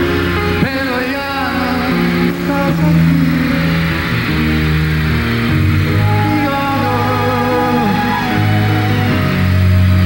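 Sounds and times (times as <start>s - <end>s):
live band playing instrumental: 0.0s - 10.0s.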